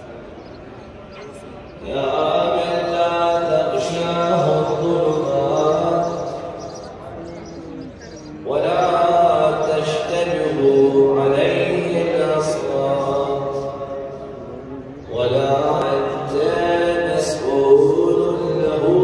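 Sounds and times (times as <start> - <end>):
man chanting: 1.8 - 6.8, 8.4 - 19.0.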